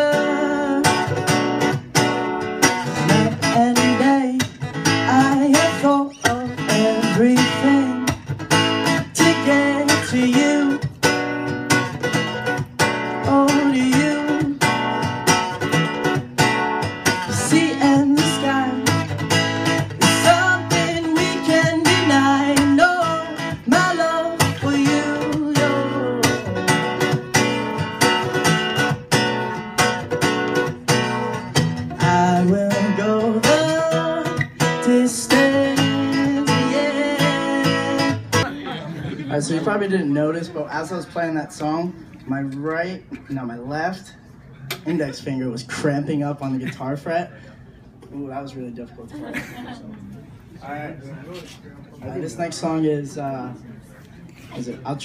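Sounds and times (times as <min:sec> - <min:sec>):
young man singing: 0:00.0 - 0:01.3, 0:02.9 - 0:08.3, 0:08.9 - 0:11.0, 0:13.1 - 0:14.9, 0:17.2 - 0:19.3, 0:20.0 - 0:27.8, 0:32.0 - 0:38.5
acoustic guitar strumming: 0:00.0 - 0:41.4.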